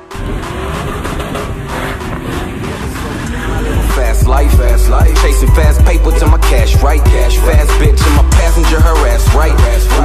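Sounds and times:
tyre screech: 0:00.0 - 0:05.3
car engine at high revs: 0:00.0 - 0:06.6
hip hop music: 0:00.0 - 0:10.0.

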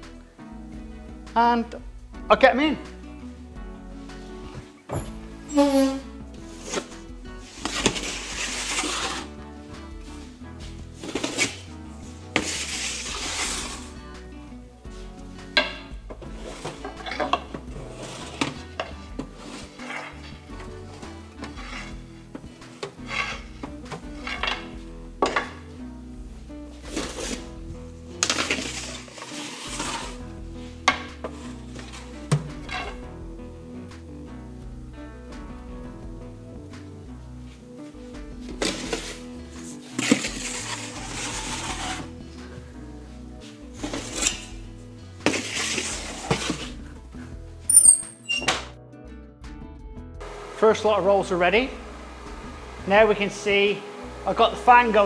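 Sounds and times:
background music: 0:00.0 - 0:55.0
metal trays scraping and clanking: 0:07.6 - 0:09.3, 0:16.3 - 0:20.4, 0:22.8 - 0:24.7, 0:28.2 - 0:30.2, 0:39.8 - 0:42.1, 0:43.8 - 0:44.5, 0:45.3 - 0:46.8.

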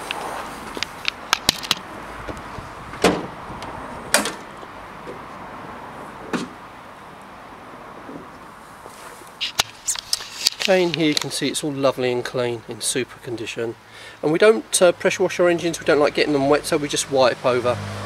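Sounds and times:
outdoor background hiss: 0:00.0 - 0:18.0
car bonnet clicks and clunks: 0:00.8 - 0:05.2, 0:06.2 - 0:06.6.

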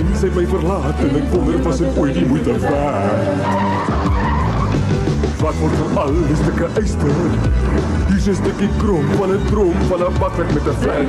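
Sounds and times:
backing music: 0:00.0 - 0:11.0
cartoon tire squeal: 0:03.1 - 0:04.8.

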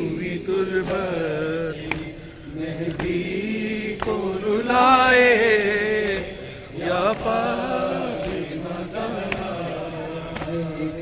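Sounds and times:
man chanting over a pa: 0:03.5 - 0:11.0.

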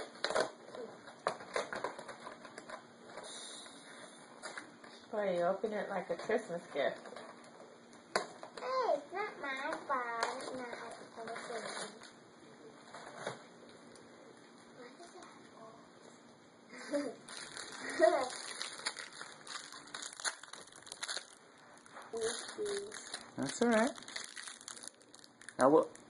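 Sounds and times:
plastic wrapper crinkling: 0:10.2 - 0:12.2, 0:17.2 - 0:26.0.

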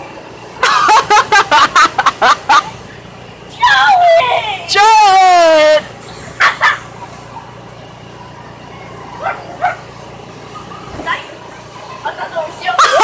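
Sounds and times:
child squealing: 0:03.6 - 0:04.7.

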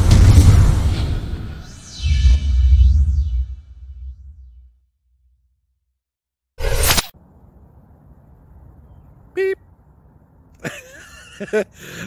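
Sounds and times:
whoosh sound effect: 0:00.0 - 0:04.7.

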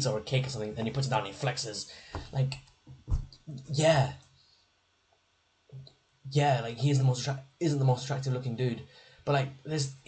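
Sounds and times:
man speaking: 0:00.0 - 0:04.2, 0:06.3 - 0:10.0.

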